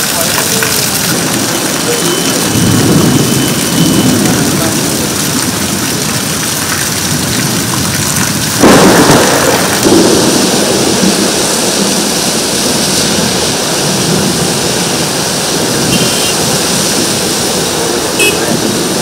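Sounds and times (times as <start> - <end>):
heavy rain pouring: 0.0 - 19.0
thunder crack and rumble: 0.0 - 19.0.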